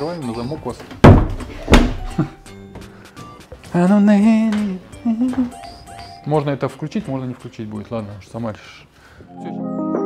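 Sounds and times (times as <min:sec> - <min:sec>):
door knock: 0:01.0 - 0:02.1
door shutting thunk: 0:01.0 - 0:02.1.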